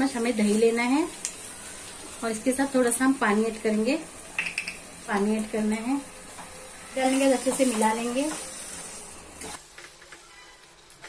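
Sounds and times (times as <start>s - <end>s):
low sizzle: 0.0s - 11.0s.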